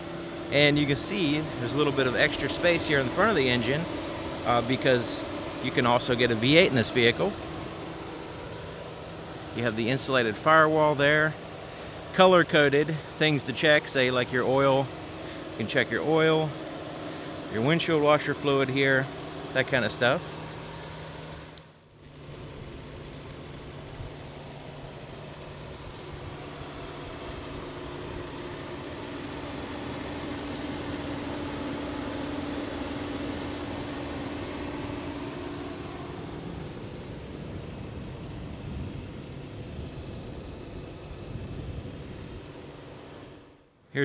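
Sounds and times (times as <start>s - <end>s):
car engine idling: 0.0s - 44.0s.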